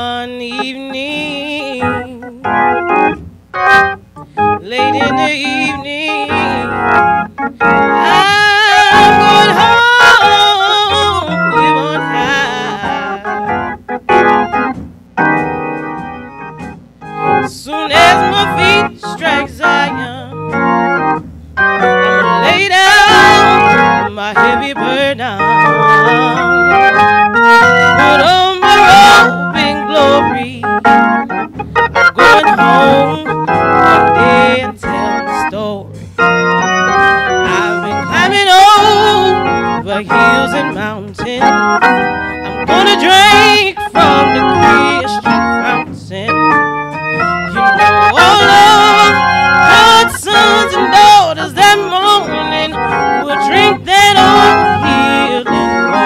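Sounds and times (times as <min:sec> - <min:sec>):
woman singing gospel: 0:00.0 - 0:02.9, 0:04.3 - 0:13.7, 0:17.4 - 0:20.8, 0:21.8 - 0:31.4, 0:32.0 - 0:36.0, 0:36.8 - 0:56.0
organ accompaniment: 0:00.0 - 0:56.0.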